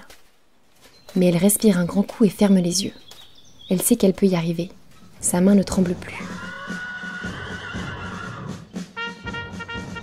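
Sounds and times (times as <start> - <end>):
faint background music: 1.0 - 10.0
horse whinnying: 6.2 - 8.7.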